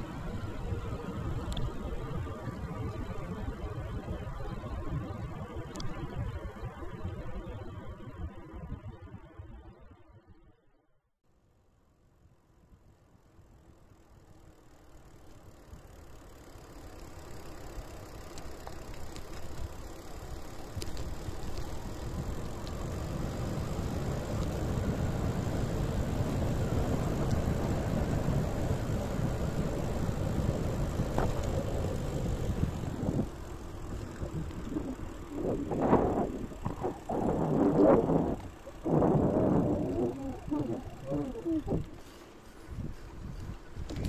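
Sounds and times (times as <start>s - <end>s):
wind and road noise rumble: 0.0s - 9.5s, 13.4s - 44.0s.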